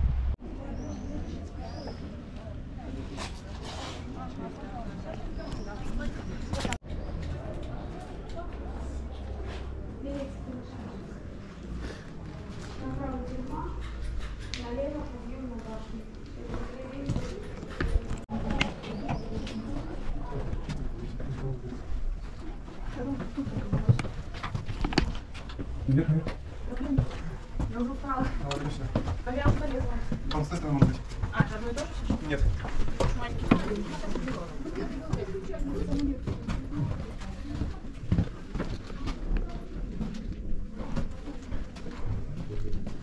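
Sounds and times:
people chattering: 0.0s - 43.0s
footsteps on stone: 14.6s - 43.0s.

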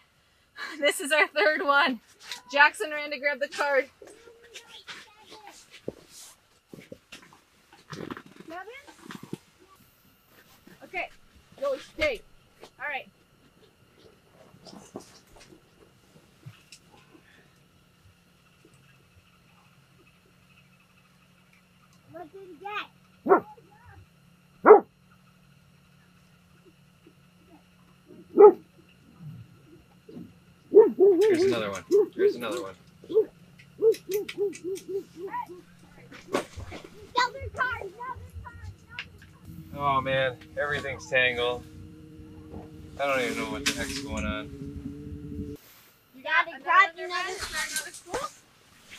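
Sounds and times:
faint steady hum: 0.0s - 48.9s
low murmurs: 25.9s - 45.6s
person making hooting calls: 30.8s - 36.1s, 38.2s - 45.6s.

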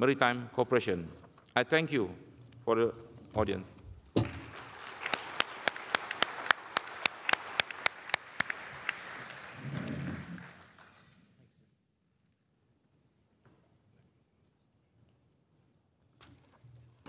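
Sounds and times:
sharp close hand claps: 4.2s - 11.0s
audience applauding: 4.2s - 11.2s.

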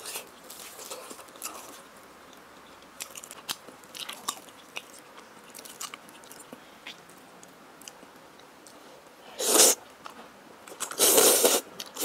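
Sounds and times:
person slurping noodles: 9.4s - 9.8s, 10.9s - 12.0s.

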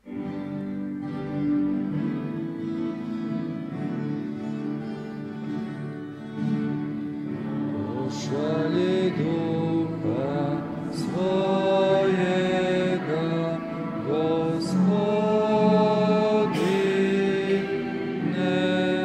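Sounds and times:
slow hymn with instruments: 0.0s - 19.0s.

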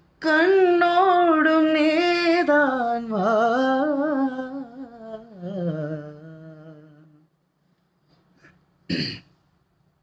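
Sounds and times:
throat clearing: 8.4s - 9.4s.

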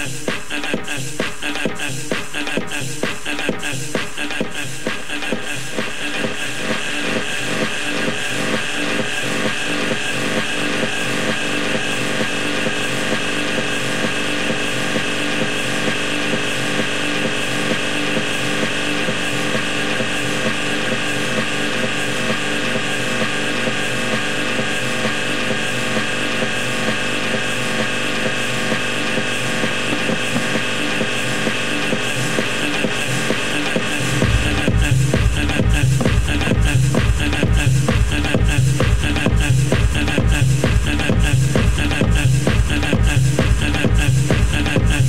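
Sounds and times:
electronic dance music: 0.0s - 45.0s.

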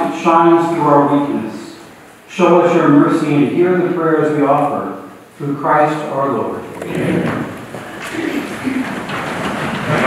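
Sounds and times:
congregation rustling and shuffling: 0.0s - 10.0s
faint low voice: 6.8s - 9.0s.

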